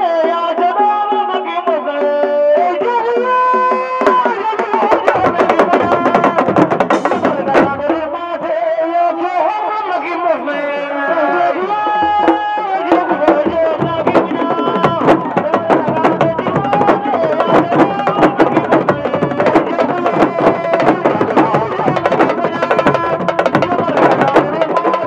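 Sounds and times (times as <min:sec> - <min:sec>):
fast drum ensemble: 0:00.0 - 0:09.3, 0:11.3 - 0:25.0
voices singing or chanting: 0:00.0 - 0:25.0.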